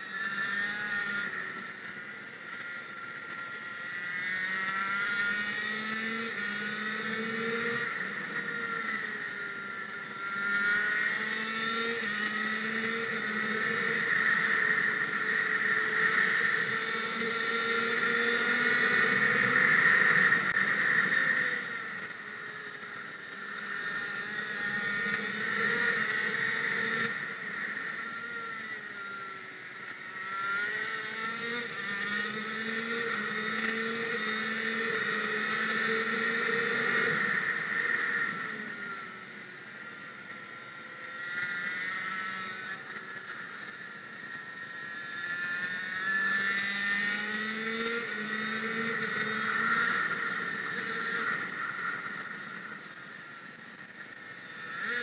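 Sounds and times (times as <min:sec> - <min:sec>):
racing engine revving: 0:03.6 - 0:39.3, 0:44.2 - 0:52.6.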